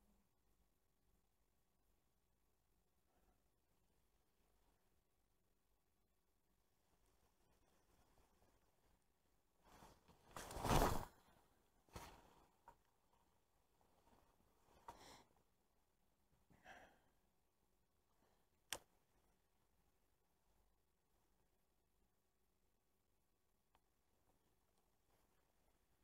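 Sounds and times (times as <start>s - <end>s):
soft rustles: 6.8s - 15.2s.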